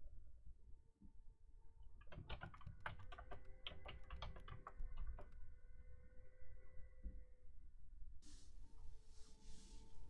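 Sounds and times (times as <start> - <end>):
computer keyboard typing: 2.0 - 5.4.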